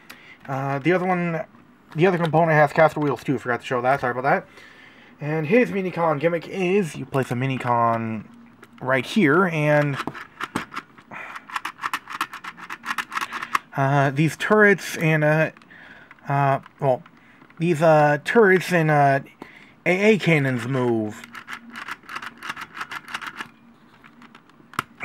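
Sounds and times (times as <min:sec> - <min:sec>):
plastic toy clicks: 0:21.2 - 0:23.5.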